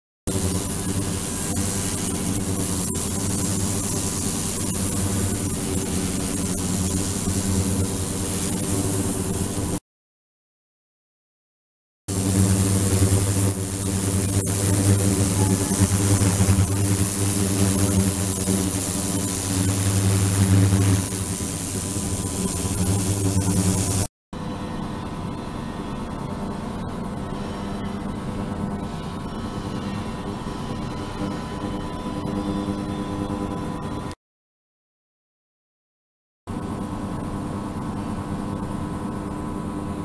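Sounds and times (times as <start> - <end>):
electric pump hum: 0.3 - 9.8, 12.1 - 24.1
thin high whine: 0.3 - 9.8, 12.1 - 24.1.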